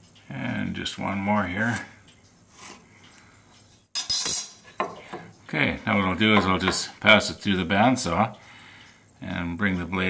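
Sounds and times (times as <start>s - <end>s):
clattering and scraping on metal table: 4.0s - 5.3s.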